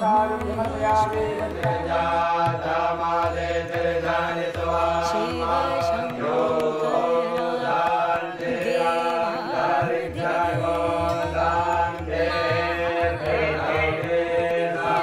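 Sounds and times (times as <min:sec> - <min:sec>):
mantra chanted to a melody: 0:00.0 - 0:15.0.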